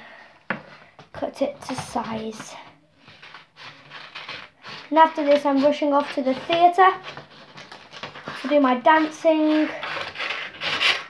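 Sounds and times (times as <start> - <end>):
scissors cutting paper: 3.1 - 11.0.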